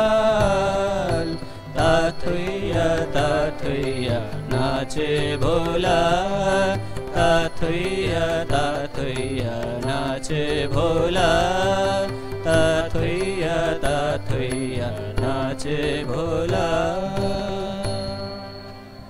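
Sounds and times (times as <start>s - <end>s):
men singing in chorus: 0.0s - 18.4s
harmonium: 0.0s - 19.0s
percussion strikes: 0.0s - 19.0s.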